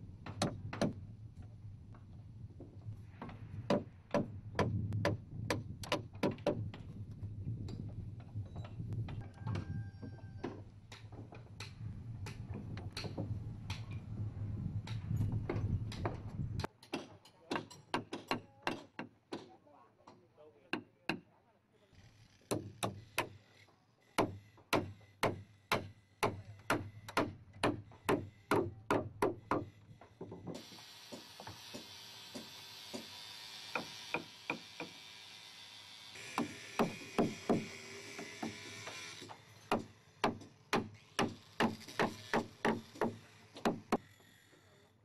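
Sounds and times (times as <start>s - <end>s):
hammer striking wood: 3.2s - 6.7s, 16.8s - 19.5s, 24.2s - 33.1s, 33.7s - 35.0s, 36.3s - 39.0s, 39.7s - 44.0s.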